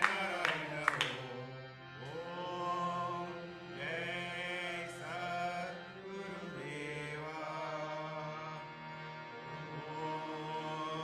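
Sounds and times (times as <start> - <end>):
person chanting: 0.0 - 8.7, 9.5 - 11.0.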